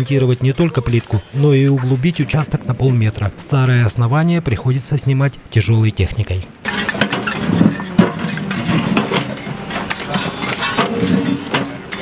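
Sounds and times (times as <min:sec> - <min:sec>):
chunks clattering against bucket: 0:06.6 - 0:12.0.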